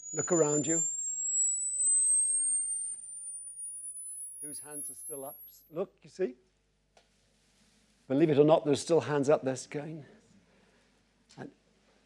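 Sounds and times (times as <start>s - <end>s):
high-pitched sine tone sweep: 0.0s - 8.9s.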